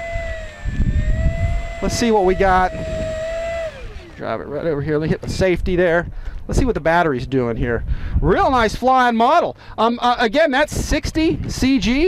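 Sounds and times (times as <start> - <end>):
electric motor and propeller whine: 0.0 - 4.8.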